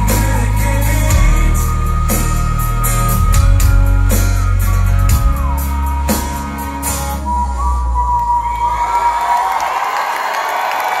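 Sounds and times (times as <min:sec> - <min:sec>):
crowd cheering and clapping: 0:05.9 - 0:11.0.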